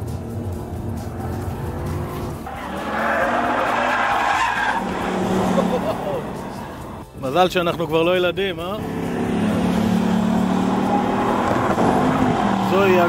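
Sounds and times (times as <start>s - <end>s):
tyres squealing: 1.0s - 7.0s.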